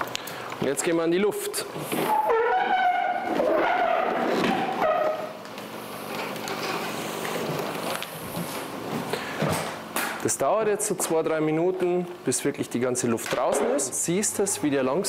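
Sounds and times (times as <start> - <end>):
vacuum bag valve squealing: 1.8 - 5.5.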